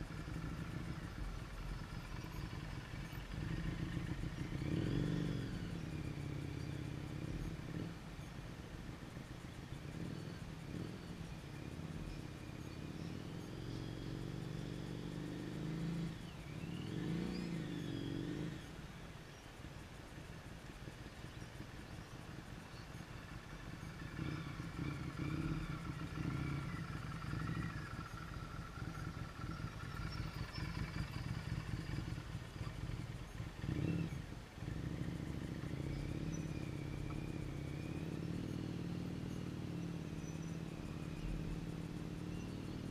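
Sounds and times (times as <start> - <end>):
motorcycle engine: 0.0 - 19.0, 20.9 - 42.9.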